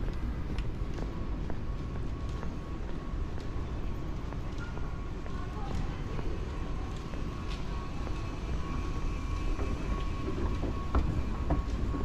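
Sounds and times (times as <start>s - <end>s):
faint steady whine: 0.0s - 12.0s
train rumbling: 0.0s - 12.0s.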